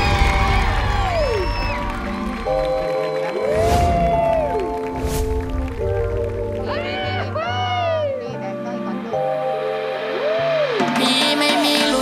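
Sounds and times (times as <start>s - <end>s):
music with sustained chords: 4.2s - 12.0s.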